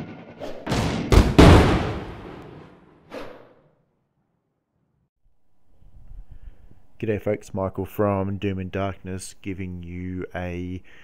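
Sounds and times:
deep booming hits: 0:00.0 - 0:02.8.

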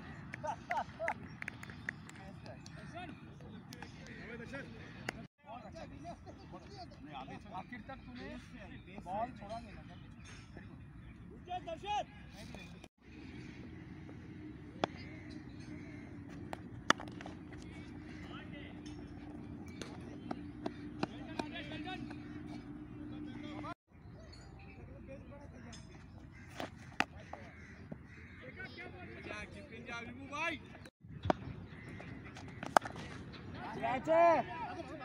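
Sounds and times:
low outdoor background hum: 0:12.5 - 0:25.8.

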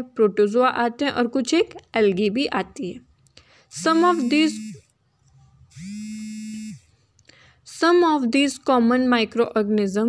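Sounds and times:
electric buzz: 0:03.7 - 0:04.9, 0:05.7 - 0:06.9.

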